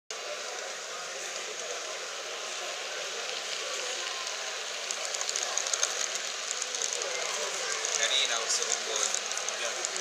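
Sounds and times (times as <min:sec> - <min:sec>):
model train running: 0:00.2 - 0:10.0.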